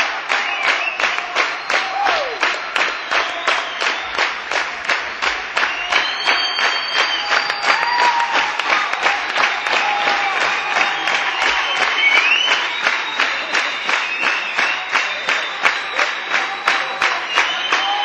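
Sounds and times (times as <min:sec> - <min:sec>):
audience clapping in unison: 0:00.0 - 0:18.0.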